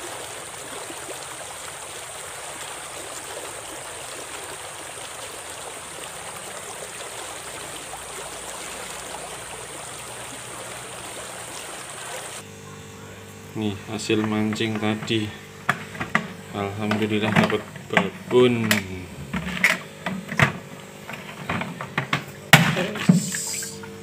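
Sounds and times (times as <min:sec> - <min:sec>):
stream rushing: 0:00.0 - 0:12.4.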